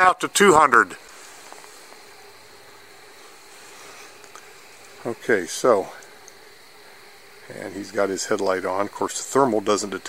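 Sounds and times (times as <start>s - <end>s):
background hiss: 0.0s - 10.0s
thin high steady tone: 0.0s - 10.0s
soft ticks: 4.2s - 4.5s, 6.0s - 6.4s.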